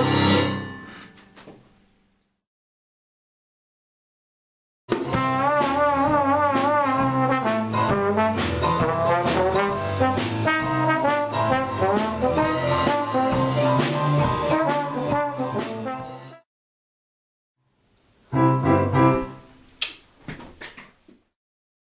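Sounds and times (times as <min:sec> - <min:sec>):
drums and bass: 0:00.0 - 0:00.7, 0:04.9 - 0:16.3
jazz with brass lead: 0:05.0 - 0:16.4.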